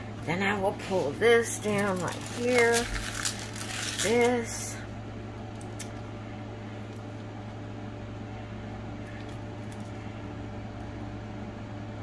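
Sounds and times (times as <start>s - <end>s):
low room hum: 0.0s - 12.0s
plastic film clicks and rustles: 1.6s - 4.6s.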